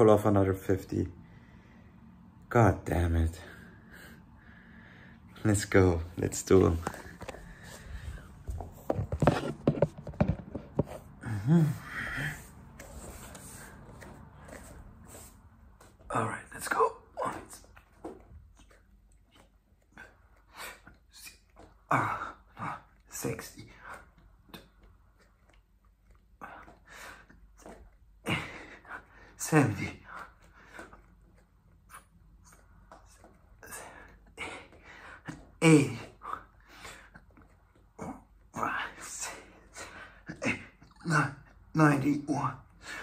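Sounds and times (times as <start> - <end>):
man breathing with strain: 3.6 - 5.4, 7.1 - 8.7, 10.9 - 15.5.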